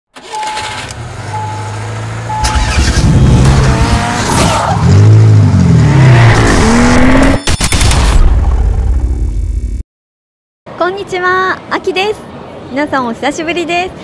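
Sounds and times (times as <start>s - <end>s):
short beeps: 0.3s - 2.6s
race car engine revving: 0.6s - 7.4s.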